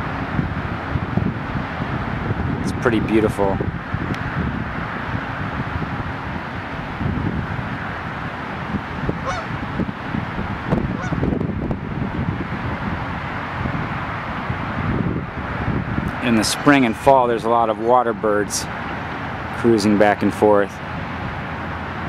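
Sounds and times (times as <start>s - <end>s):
wind rushing over microphone: 0.0s - 22.0s
goose-like honks: 9.2s - 9.6s, 10.8s - 11.3s.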